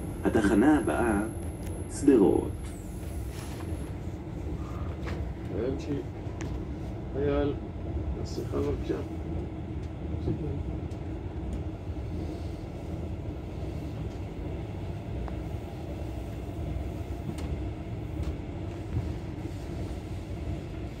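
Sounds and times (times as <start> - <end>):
train rumbling inside carriage: 0.0 - 21.0
faint train clicks: 8.2 - 21.0.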